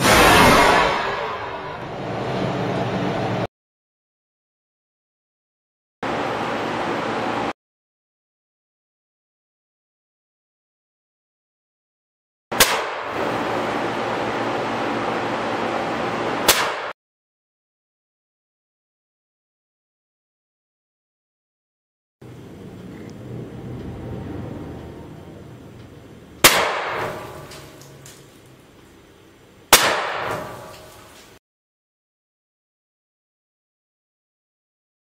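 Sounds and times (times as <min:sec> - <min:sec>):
shotgun shots: 0:12.6 - 0:13.3, 0:16.4 - 0:17.0, 0:26.4 - 0:27.7, 0:29.7 - 0:30.8.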